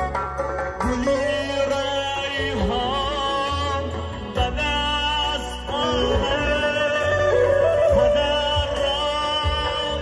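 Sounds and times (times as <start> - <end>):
backing music with bass line: 0.0 - 10.0
man singing into a microphone: 0.6 - 10.0.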